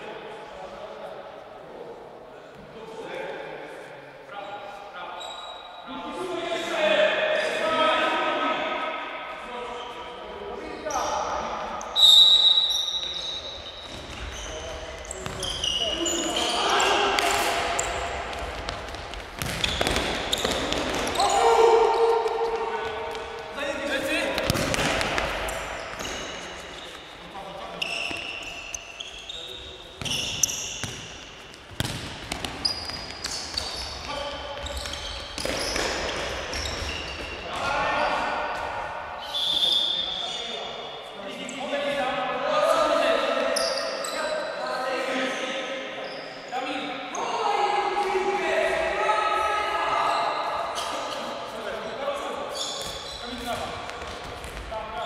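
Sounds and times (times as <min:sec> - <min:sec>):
players shouting: 0:20.4 - 0:26.4.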